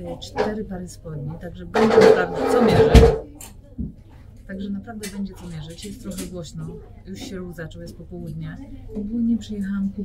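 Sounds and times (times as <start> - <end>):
woman speaking: 0.0 - 3.9, 4.5 - 10.0.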